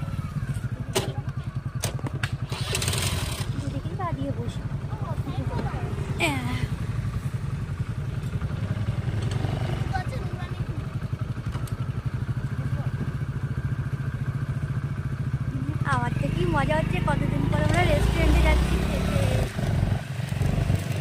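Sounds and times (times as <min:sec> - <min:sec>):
motorcycle engine running: 0:00.0 - 0:21.0.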